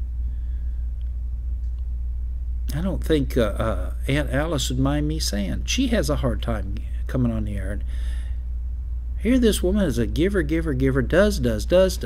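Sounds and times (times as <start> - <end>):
steady deep hum: 0.0 - 12.0.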